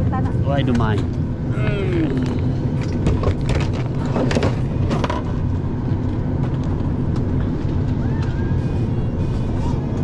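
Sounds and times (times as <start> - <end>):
airliner cabin air rumble: 0.0 - 10.0.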